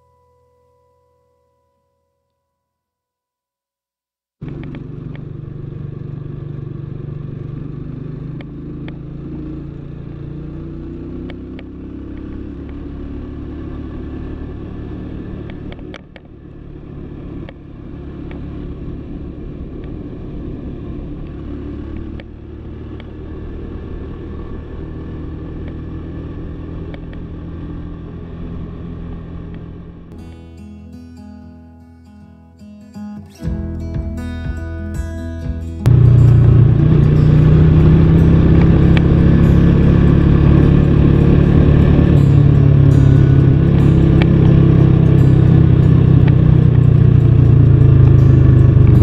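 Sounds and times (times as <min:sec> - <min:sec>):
motorcycle engine running: 0:04.4 - 0:30.2, 0:33.5 - 0:49.0.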